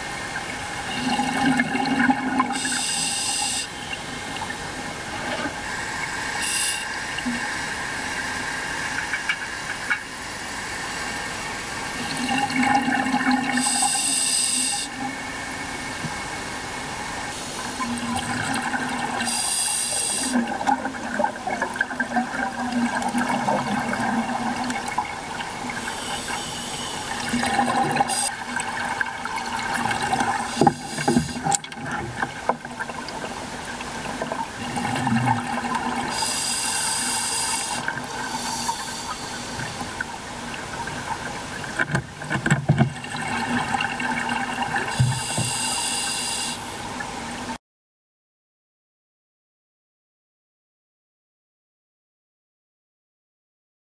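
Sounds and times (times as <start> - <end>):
steady watery background: 0.0 - 47.6
gurgle of exhaled bubbles: 0.8 - 2.7, 20.1 - 26.0, 27.1 - 36.2
regulator inhalation hiss: 2.5 - 3.9, 5.8 - 7.3, 13.6 - 14.9, 19.2 - 20.4, 25.8 - 27.2, 28.1 - 28.3, 30.4 - 31.5, 36.1 - 39.9, 44.9 - 46.8.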